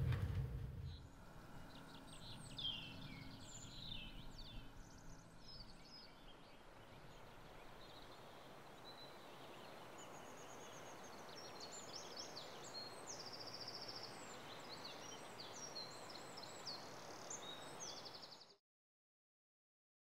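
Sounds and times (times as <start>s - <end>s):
steady background hiss: 0.0s - 18.4s
small birds chirping and trilling: 1.7s - 18.6s.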